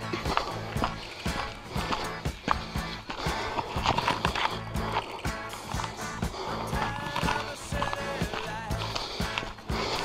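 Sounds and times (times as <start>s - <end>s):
footsteps walking: 0.0s - 10.0s
music playing: 0.0s - 10.0s.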